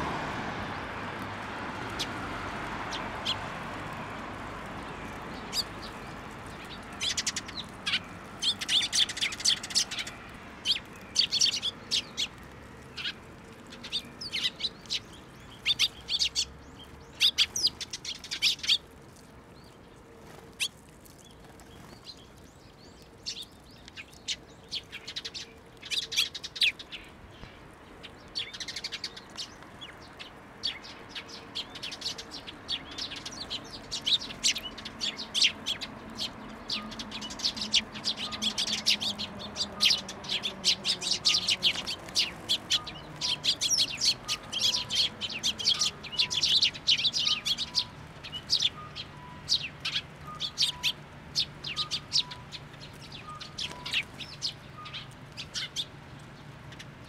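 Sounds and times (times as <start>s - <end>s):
sparrows chirping: 1.2s - 57.0s.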